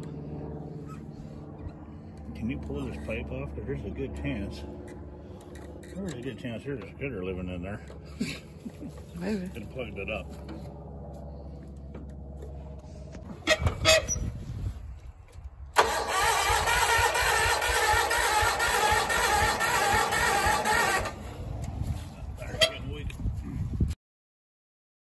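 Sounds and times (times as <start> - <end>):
engine cranking without catching: 15.3 - 21.7.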